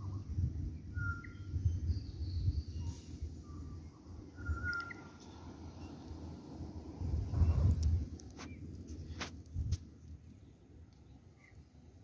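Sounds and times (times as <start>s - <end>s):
bird chirps: 0.0s - 6.1s
low microphone rumble: 6.7s - 8.1s.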